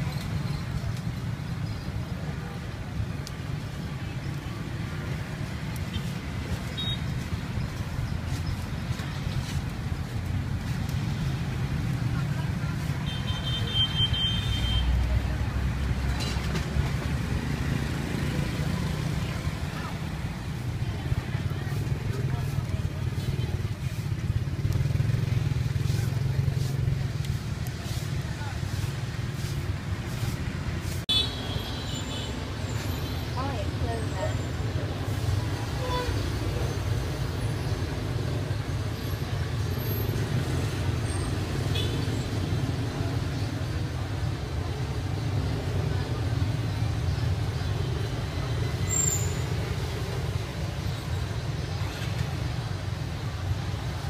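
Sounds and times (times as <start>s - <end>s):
traffic rumble: 0.0s - 54.0s.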